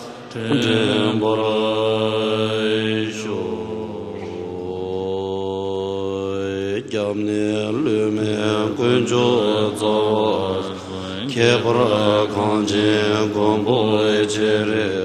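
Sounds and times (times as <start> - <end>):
monks chanting in unison: 0.0 - 15.0.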